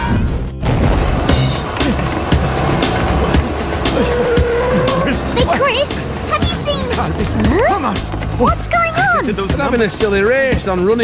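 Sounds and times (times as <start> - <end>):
cartoon background music: 0.0 - 11.0
car engine hum: 1.0 - 10.9.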